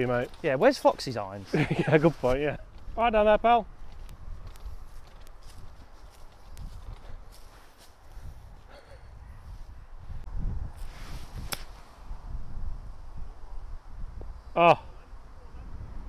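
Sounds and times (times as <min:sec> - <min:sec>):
wind buffeting microphone: 0:01.6 - 0:16.0
sharp click: 0:11.5 - 0:11.7.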